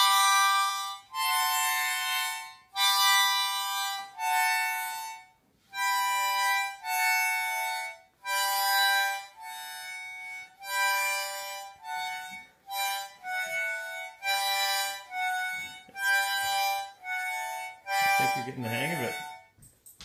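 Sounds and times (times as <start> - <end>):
harmonica chords: 0.0 - 19.7.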